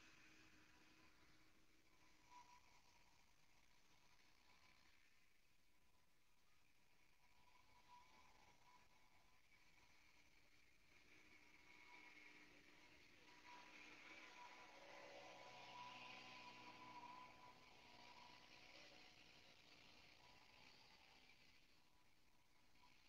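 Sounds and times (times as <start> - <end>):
faint steady whine: 0.0 - 23.0.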